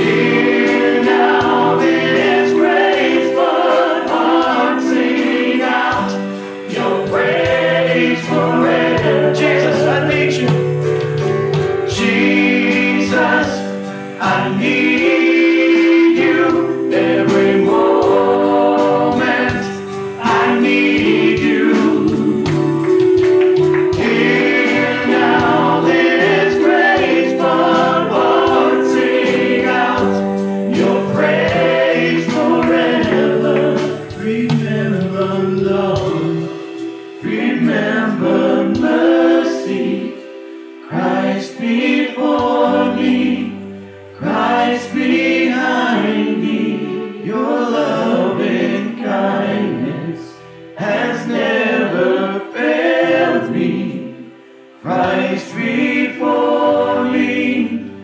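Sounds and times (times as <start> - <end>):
steady percussion beat: 0.0 - 40.3
band accompaniment: 0.0 - 49.6
group singing gospel song: 0.0 - 58.0.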